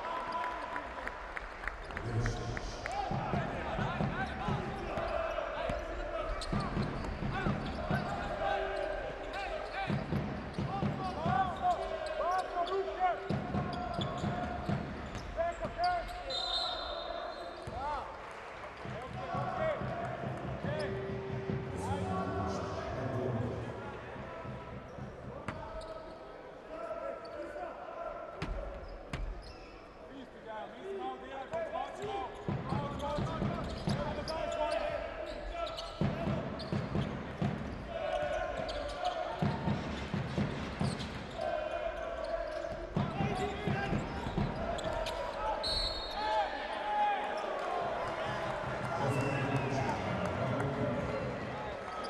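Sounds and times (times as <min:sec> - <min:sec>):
arena crowd noise and voices: 0:00.0 - 0:52.0
sneaker squeaks: 0:06.2 - 0:17.9, 0:24.9 - 0:26.2, 0:28.8 - 0:30.0, 0:31.5 - 0:37.2, 0:38.0 - 0:46.4.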